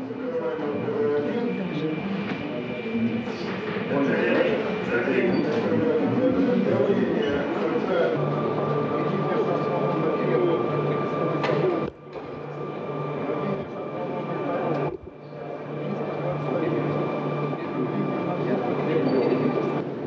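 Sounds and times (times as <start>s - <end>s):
busy room noise: 0.0s - 20.0s
indistinct voices: 0.0s - 20.0s
steady high whine: 0.0s - 20.0s.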